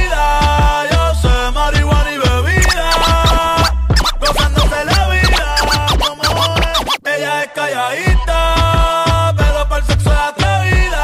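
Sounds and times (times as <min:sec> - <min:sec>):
reggaeton dance music: 0:02.0 - 0:11.0
turntable scratching: 0:02.6 - 0:07.0.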